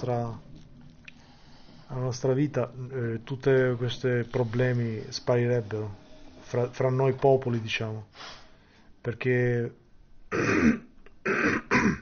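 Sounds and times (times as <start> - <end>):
man clearing throat and coughing: 10.3 - 12.0.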